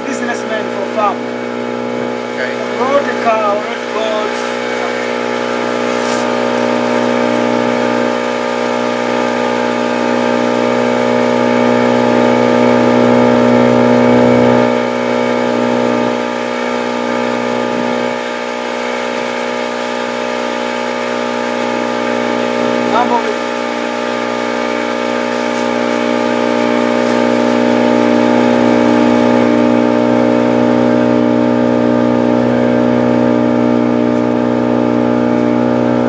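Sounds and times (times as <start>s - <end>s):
boat engine running: 0.0s - 36.0s.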